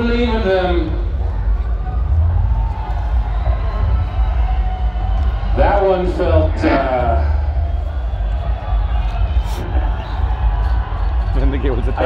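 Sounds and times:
amplified music with heavy bass: 0:00.0 - 0:12.0
crowd noise: 0:00.0 - 0:12.0.

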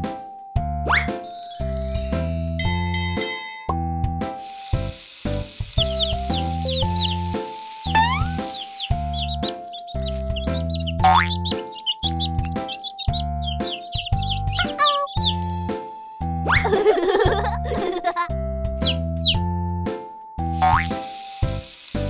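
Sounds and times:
bouncy children's music: 0:00.0 - 0:22.0
high chirping sound effects: 0:05.8 - 0:15.4, 0:18.8 - 0:19.4.

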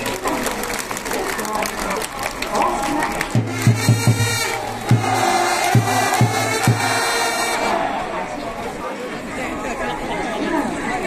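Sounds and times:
big drum strikes: 0:03.3 - 0:07.4
held trumpet notes: 0:03.4 - 0:07.9
crowd chanting: 0:03.4 - 0:10.0.

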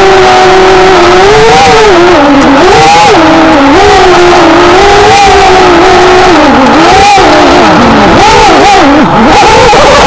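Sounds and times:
small engine revving: 0:00.0 - 0:10.0.

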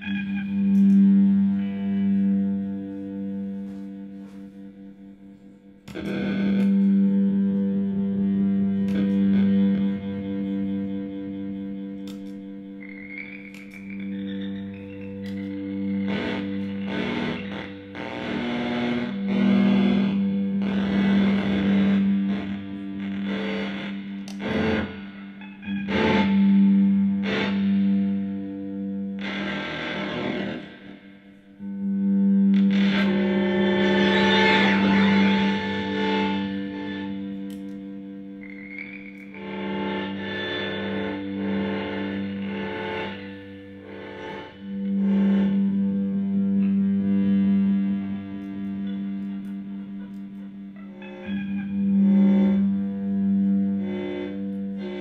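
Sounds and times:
electric guitar drone: 0:00.0 - 0:55.0.

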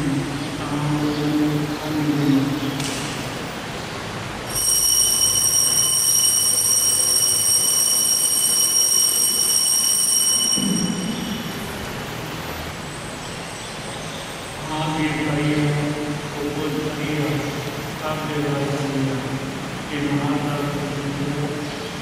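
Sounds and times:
altar bells ringing: 0:04.5 - 0:11.9.

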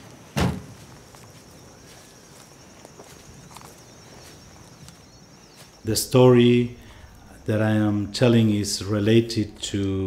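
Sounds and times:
footsteps in grass: 0:00.0 - 0:06.2
high insect trill: 0:00.0 - 0:10.0
faint bird chirps: 0:01.3 - 0:07.4.

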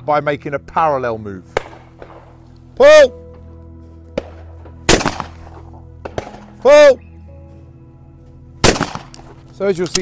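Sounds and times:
background music: 0:00.0 - 0:10.0
shotgun shot: 0:01.5 - 0:02.3, 0:04.2 - 0:06.6, 0:08.6 - 0:09.4.

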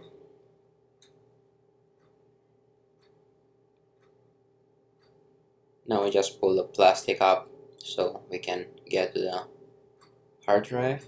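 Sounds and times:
faint steady hum: 0:00.0 - 0:11.0
faint ticks: 0:01.0 - 0:01.3, 0:02.9 - 0:04.3, 0:08.8 - 0:11.0.

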